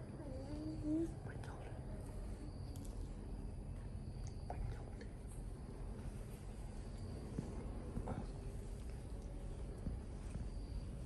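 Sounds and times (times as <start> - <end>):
low background rumble: 0.0 - 11.0
person whispering: 0.2 - 2.0, 4.4 - 5.2
faint clicks: 2.7 - 3.1, 4.2 - 5.2.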